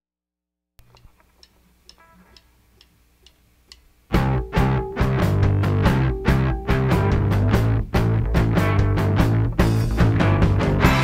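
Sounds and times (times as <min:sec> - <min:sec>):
faint steady ticking: 0:00.8 - 0:07.2.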